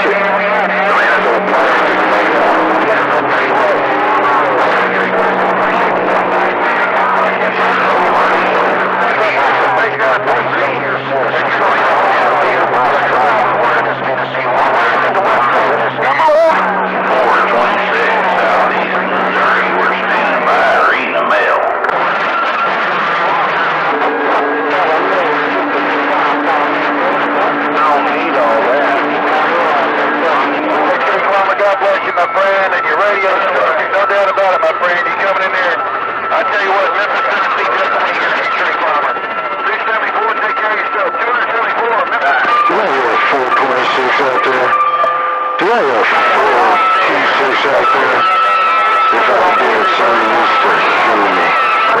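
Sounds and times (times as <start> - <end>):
garbled radio voices: 0.0 - 52.0
radio static: 0.0 - 52.0.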